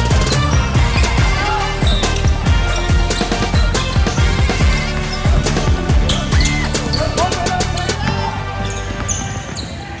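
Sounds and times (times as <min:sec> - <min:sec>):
music: 0:00.0 - 0:10.0
sneakers squeaking: 0:00.0 - 0:10.0
voices in a hall: 0:00.5 - 0:03.8, 0:04.6 - 0:10.0.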